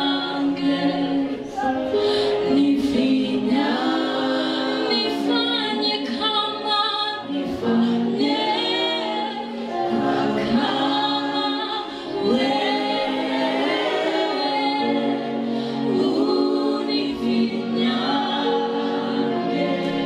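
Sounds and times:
women singing worship song: 0:00.0 - 0:20.0.

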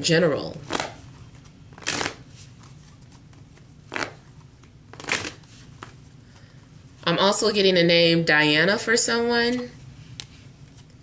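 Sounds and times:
cards being shuffled: 0:00.6 - 0:06.0.

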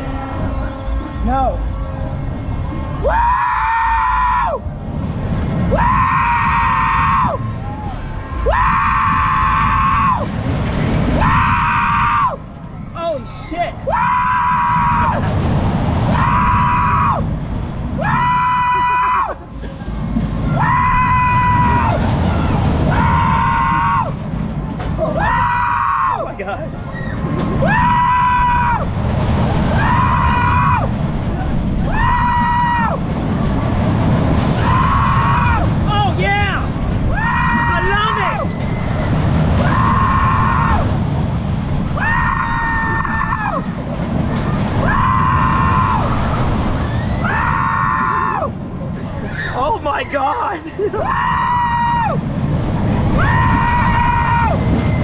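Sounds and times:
wind rumble on microphone: 0:00.0 - 0:55.0
ride riders screaming woo: 0:03.0 - 0:04.6, 0:05.7 - 0:10.3, 0:11.2 - 0:12.4, 0:13.0 - 0:15.3, 0:16.1 - 0:17.3, 0:18.0 - 0:19.4, 0:20.5 - 0:24.2, 0:25.0 - 0:29.0, 0:29.7 - 0:31.0, 0:31.8 - 0:33.1, 0:34.6 - 0:41.0, 0:41.9 - 0:52.3, 0:53.0 - 0:55.0.

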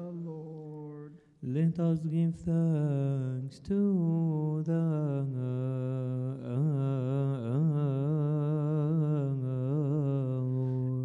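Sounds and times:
man chanting a hymn: 0:00.0 - 0:11.0.

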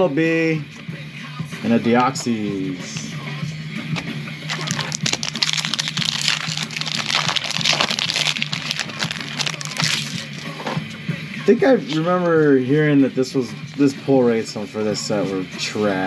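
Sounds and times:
background music: 0:00.0 - 0:16.0
foil wrapper crinkling and tearing: 0:04.5 - 0:10.4.

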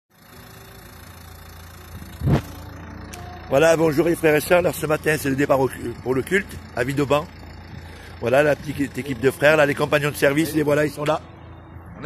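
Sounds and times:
car engine idling: 0:00.1 - 0:12.0.

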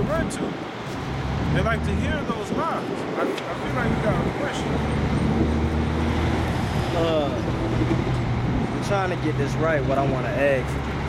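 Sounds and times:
vehicle engine humming: 0:00.0 - 0:02.5, 0:03.4 - 0:11.0
city road traffic: 0:00.0 - 0:11.0.

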